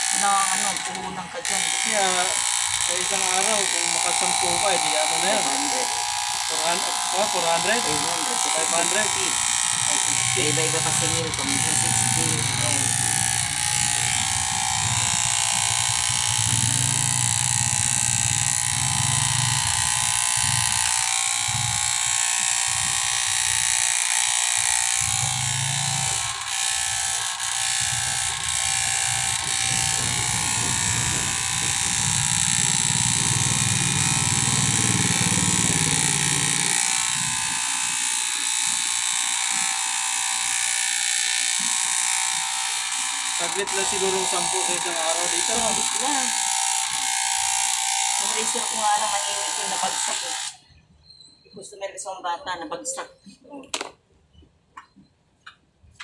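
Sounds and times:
electric hair clippers buzzing: 0.0 - 50.7.

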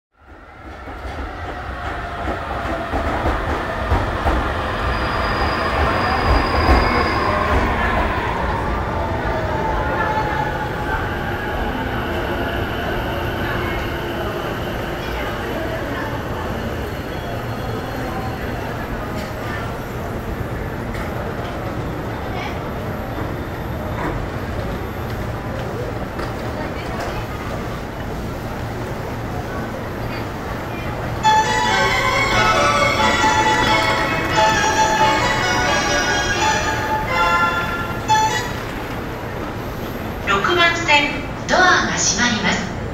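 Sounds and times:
electric train rumbling to a stop: 0.2 - 41.4.

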